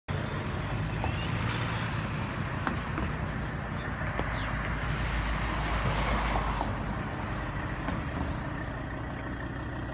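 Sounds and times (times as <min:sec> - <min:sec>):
diesel engine idling: 0:00.1 - 0:09.9.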